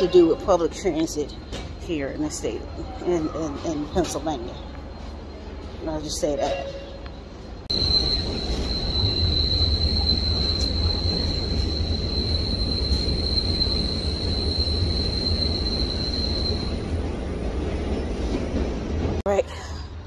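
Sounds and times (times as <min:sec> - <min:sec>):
rail car rumbling: 0:00.0 - 0:20.0
high-pitched squeal: 0:07.7 - 0:16.9.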